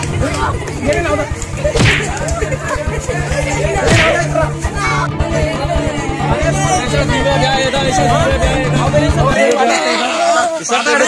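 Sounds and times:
steady low hum: 0.0s - 9.4s
whip-like swish hit effect: 1.6s - 2.6s, 3.7s - 5.0s.

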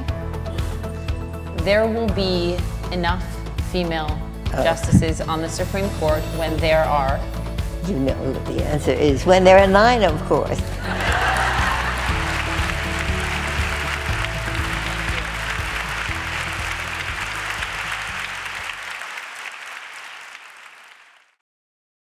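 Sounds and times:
background music: 0.0s - 20.7s
audience applauding: 10.8s - 21.4s.

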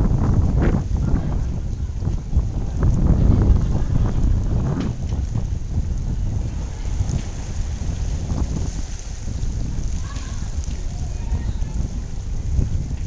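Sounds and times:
sea washing on rocky shore: 0.0s - 13.0s
wind buffeting microphone: 0.0s - 13.0s.

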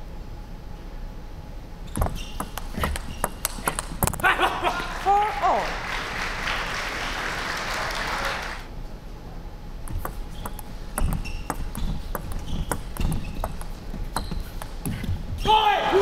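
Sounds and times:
shoes squeaking on floor: 1.8s - 4.3s, 9.9s - 15.8s
table tennis ball clicking: 1.9s - 4.2s, 9.9s - 15.0s
applause: 4.7s - 8.7s.

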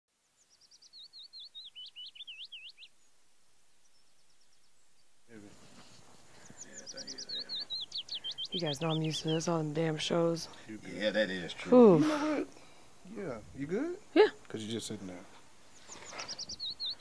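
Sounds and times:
songbird singing whistled notes: 0.2s - 3.2s, 6.4s - 9.9s, 15.7s - 17.0s.

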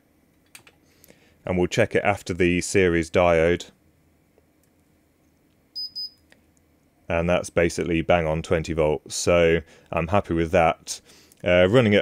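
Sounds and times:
high-pitched electronic beeps: 5.8s - 6.2s.

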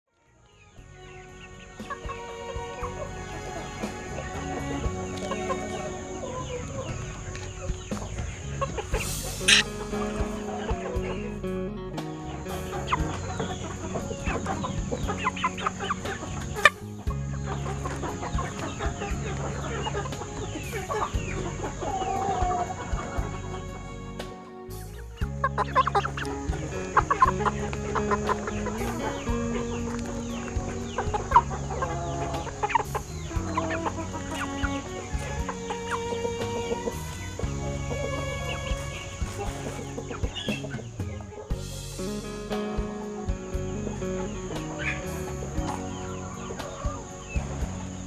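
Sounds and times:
background music with low notes: 0.1s - 48.0s
chickens clucking: 0.5s - 48.0s.

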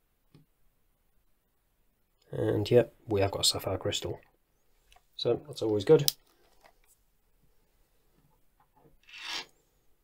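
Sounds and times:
watch strap scraping on wooden desk: 9.0s - 9.6s.

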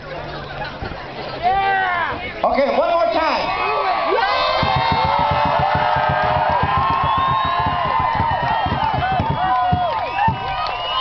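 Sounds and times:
fast even drum beat: 4.5s - 10.5s.

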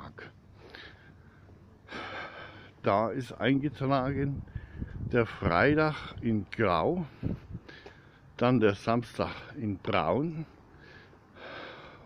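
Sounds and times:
man breathing in: 0.5s - 2.8s, 4.5s - 5.0s, 7.1s - 8.3s, 10.7s - 12.0s
man speaking: 2.8s - 4.4s, 5.1s - 7.1s, 8.4s - 10.6s.

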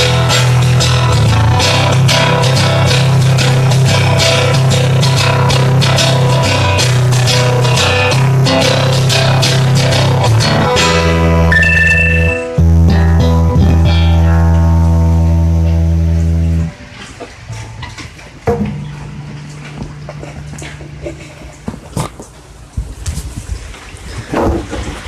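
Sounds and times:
plucked guitar chords: 0.0s - 21.7s
low bass note: 11.2s - 16.8s.

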